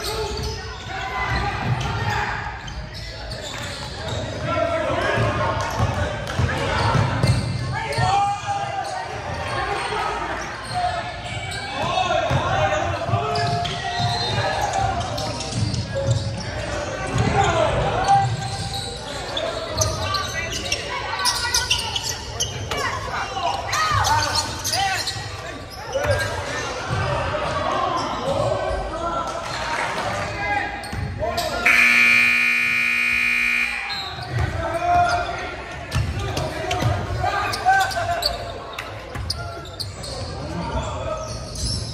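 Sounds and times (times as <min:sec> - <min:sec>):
echoing voices in hall: 0:00.0 - 0:41.9
scoreboard buzzer: 0:31.7 - 0:33.9.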